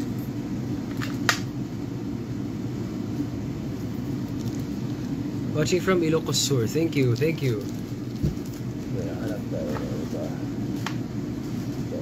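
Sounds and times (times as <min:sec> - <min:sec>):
bird cooing: 0:09.0 - 0:10.4.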